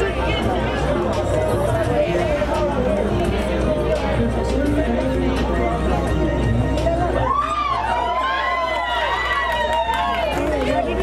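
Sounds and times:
crowd talking and shouting: 0.0s - 11.0s
high voice long cheer: 7.1s - 10.9s.

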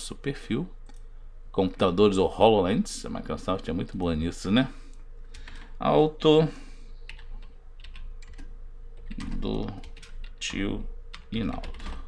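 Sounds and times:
computer keyboard typing: 5.3s - 5.7s, 7.1s - 12.0s.

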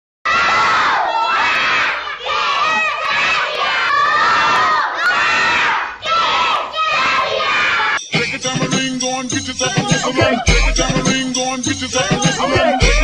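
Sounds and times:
children shouting and cheering: 0.3s - 8.0s.

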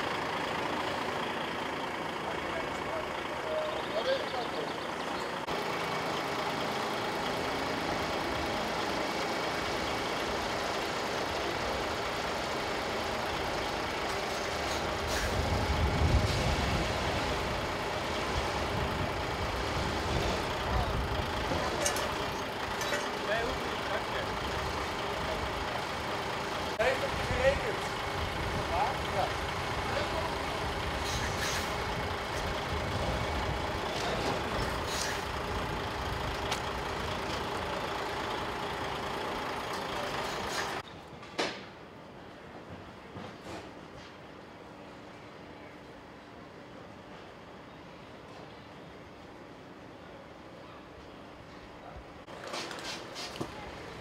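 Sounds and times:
diesel truck engine idling: 0.0s - 40.8s, 48.8s - 54.0s.

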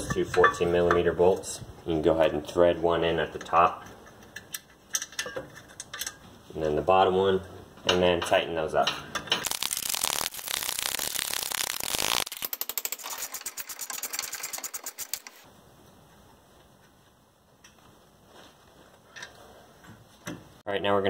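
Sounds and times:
ratchet wrench clicking: 9.4s - 15.4s.

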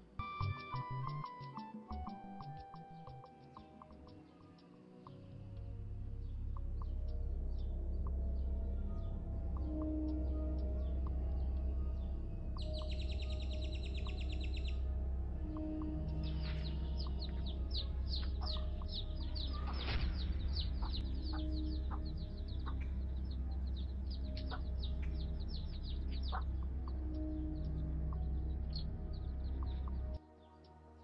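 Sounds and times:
birds chirping: 0.0s - 30.8s
soft background music: 0.0s - 31.0s.

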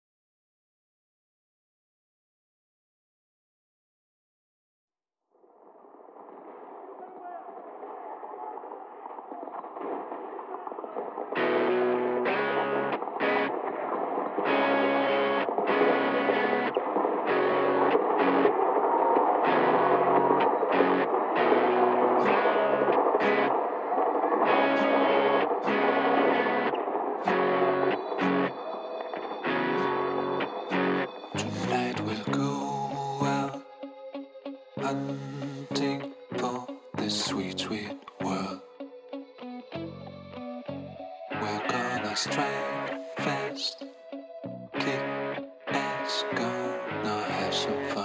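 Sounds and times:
noisy swell: 5.6s - 36.4s
rock band with distorted guitar: 10.8s - 31.5s.

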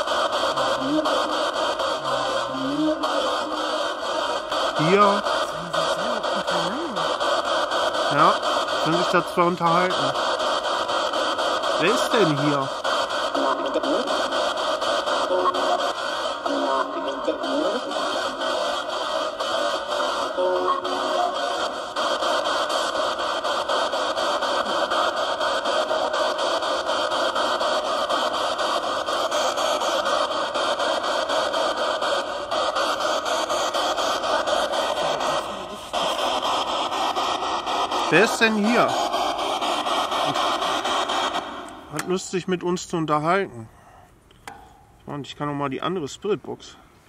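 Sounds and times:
radio static: 0.0s - 42.4s
snatches of broadcast sound: 0.0s - 42.6s.

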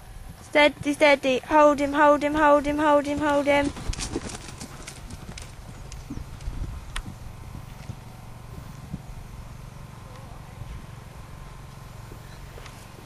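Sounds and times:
horse hoofbeats on sand: 0.2s - 11.5s.

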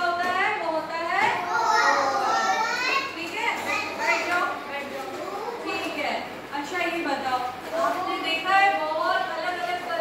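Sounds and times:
young children talking and calling out: 1.2s - 5.8s.

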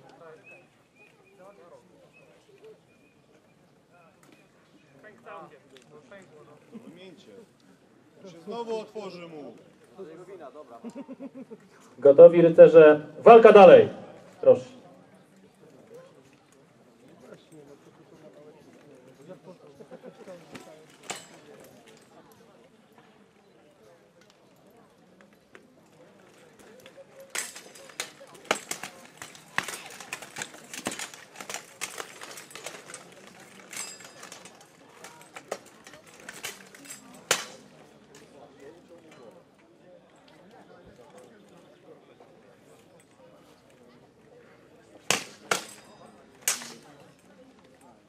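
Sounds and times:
metal swords striking armour: 37.3s - 37.6s, 45.1s - 46.8s.

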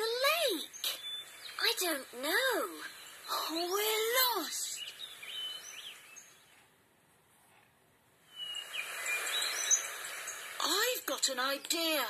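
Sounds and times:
high bird chirps: 0.0s - 6.7s, 8.2s - 12.0s
soft hiss: 0.0s - 12.0s
person speaking: 1.6s - 4.9s.

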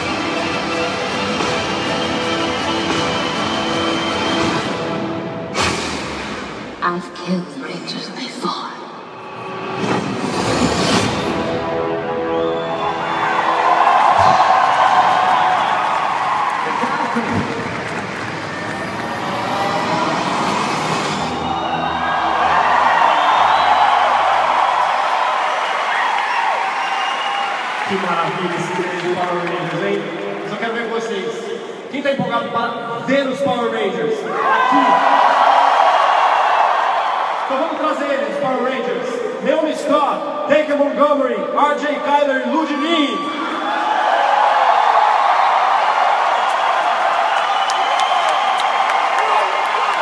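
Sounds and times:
audience cheering and screaming: 0.0s - 6.2s, 9.4s - 31.2s, 33.9s - 39.1s, 42.3s - 50.0s
trailer music over loudspeakers: 0.0s - 14.8s, 17.3s - 25.4s.

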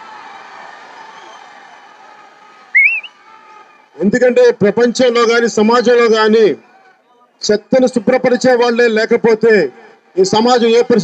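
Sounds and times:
crowd noise: 0.0s - 11.0s
person whistling: 2.8s - 3.1s.

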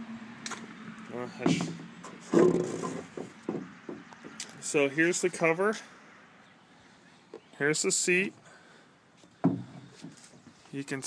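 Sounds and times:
knocks and rubs: 1.4s - 4.4s.

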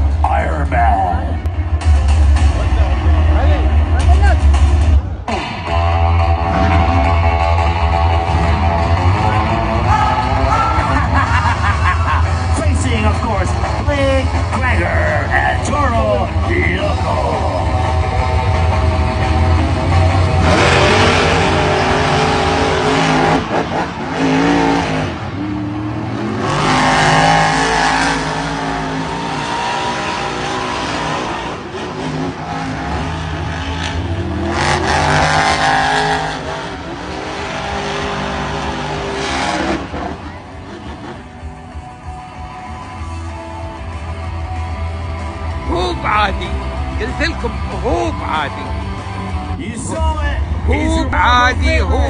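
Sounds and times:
monster truck engines racing: 0.0s - 52.0s.

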